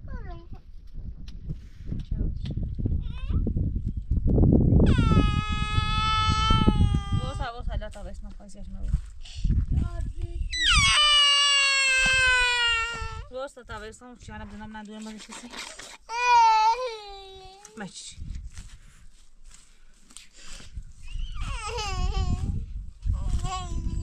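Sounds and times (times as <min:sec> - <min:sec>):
small child crying: 0:04.8 - 0:07.5, 0:10.5 - 0:13.3, 0:16.1 - 0:17.6, 0:21.2 - 0:22.6, 0:23.2 - 0:24.0.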